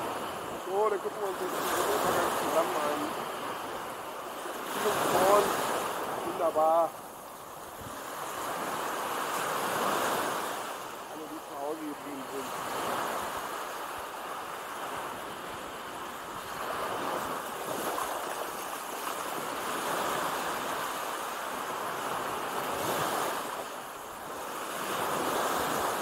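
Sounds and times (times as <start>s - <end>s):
waves breaking on a beach: 0.0s - 26.0s.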